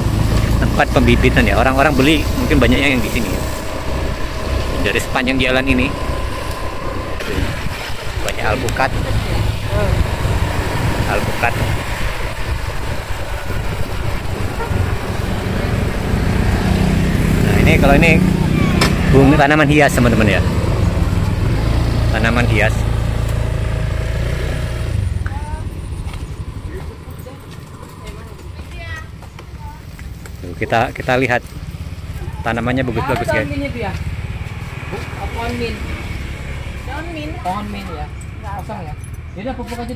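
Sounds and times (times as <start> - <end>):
motorbike engine: 0.0 - 39.9
wind on microphone: 1.8 - 19.2.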